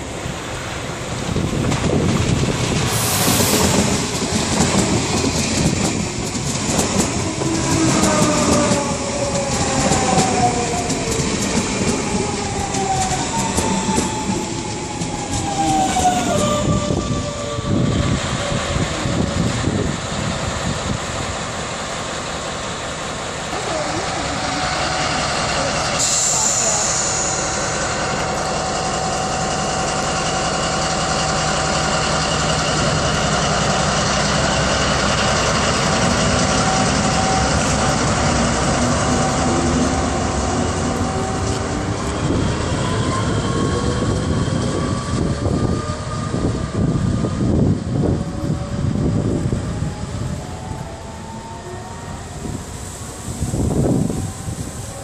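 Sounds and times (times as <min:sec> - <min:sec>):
diesel locomotive engine drone: 0:00.0 - 0:55.0
electric train passing with whine: 0:00.0 - 0:55.0
brief high hiss: 0:02.9 - 0:03.9.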